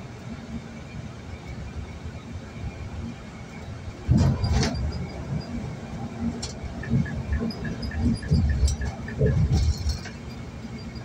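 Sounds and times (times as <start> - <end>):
car road rumble from inside: 4.0 - 11.0.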